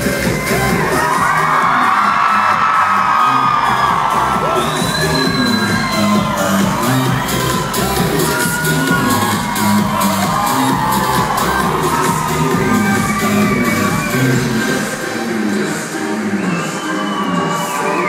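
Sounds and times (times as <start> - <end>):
audience screaming and cheering: 0.0 - 18.0
live pop music with steady beat: 0.0 - 18.0.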